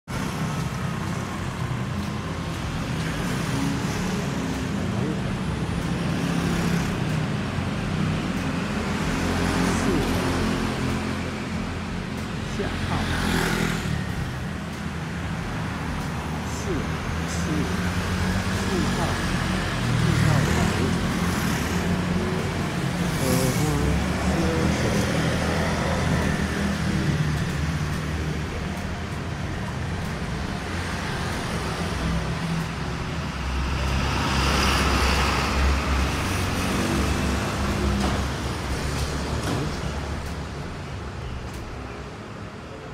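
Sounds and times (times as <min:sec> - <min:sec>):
low traffic rumble: 0:00.0 - 0:42.9
scooters and cars passing: 0:00.1 - 0:42.9.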